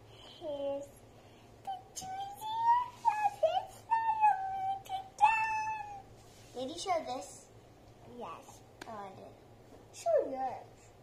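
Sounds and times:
child's voice: 0:00.3 - 0:01.0, 0:01.6 - 0:07.5, 0:08.1 - 0:10.9.

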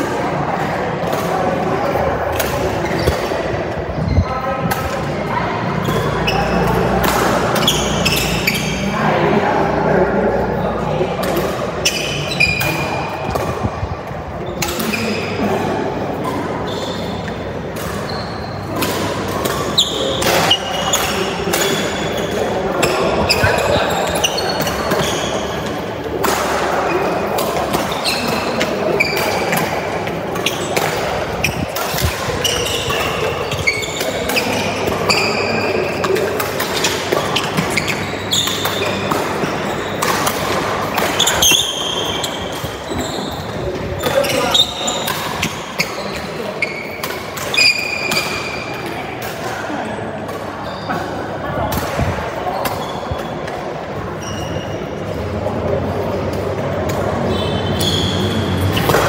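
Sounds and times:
shoes squeaking on court: 0:01.3 - 0:05.0, 0:05.6 - 0:09.0, 0:11.2 - 0:15.5, 0:16.2 - 0:49.2, 0:49.8 - 0:59.0
racket hitting shuttlecock: 0:17.1 - 0:42.8, 0:43.4 - 0:49.5, 0:58.7 - 0:59.0.

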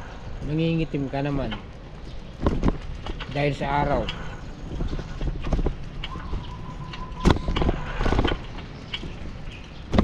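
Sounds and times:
wind rumbling on microphone: 0:00.0 - 0:10.0
bicycle rattling and knocking: 0:01.4 - 0:10.0.

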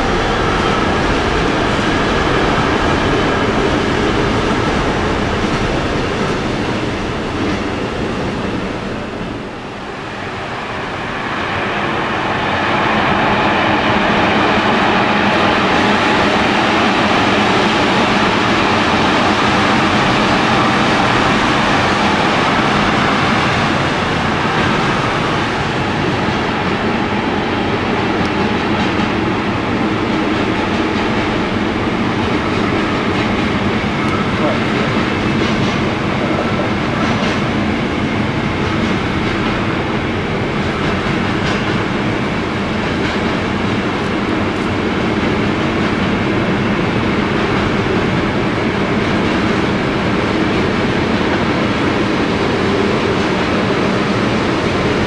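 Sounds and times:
freight train rumbling on rails: 0:00.0 - 0:55.0
train wheels clicking: 0:12.8 - 0:55.0.

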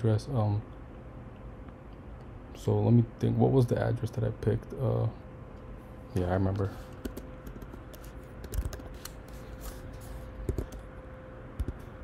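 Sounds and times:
typing on computer keyboard: 0:06.9 - 0:09.1, 0:10.5 - 0:10.8.

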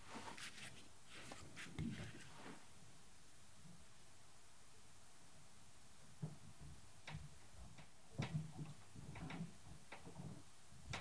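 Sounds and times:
faint clicks and soft knocks: 0:06.0 - 0:11.0.

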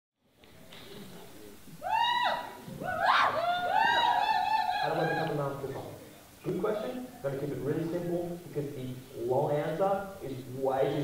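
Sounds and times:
faint hiss: 0:00.2 - 0:11.0.

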